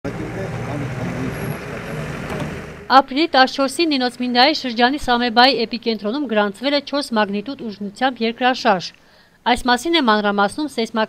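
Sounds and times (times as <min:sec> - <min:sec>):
vehicle engine running: 0:00.0 - 0:05.4.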